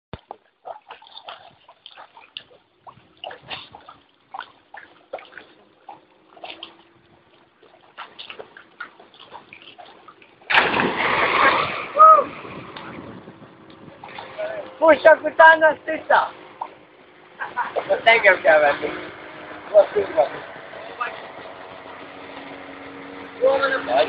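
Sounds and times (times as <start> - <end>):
loud splash into river: 10.5 - 13.2.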